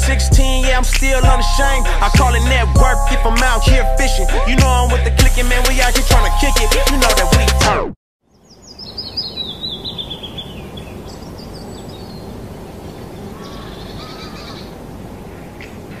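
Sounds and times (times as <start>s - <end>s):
birds chirping: 8.2s - 16.0s
steady background hiss: 8.4s - 16.0s.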